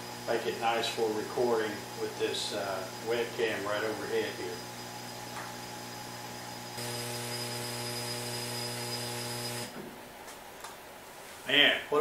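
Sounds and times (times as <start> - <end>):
louder hum with hiss: 0.0 - 10.0
machinery electrical hum: 0.0 - 12.0.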